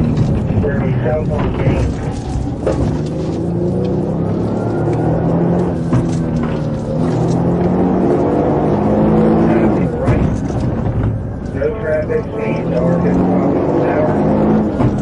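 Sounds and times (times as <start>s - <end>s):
car engine drone: 0.0s - 15.0s
tyre road noise: 0.0s - 15.0s.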